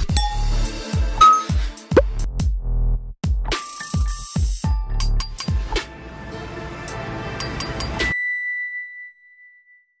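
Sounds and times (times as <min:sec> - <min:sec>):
bright electronic ding: 0:01.2 - 0:01.6
electronic music: 0:01.2 - 0:02.0.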